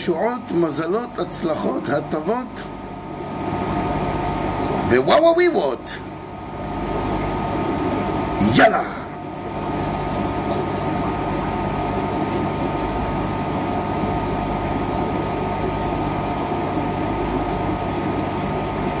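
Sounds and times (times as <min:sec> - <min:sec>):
machine hum with held tones: 0:00.0 - 0:19.0.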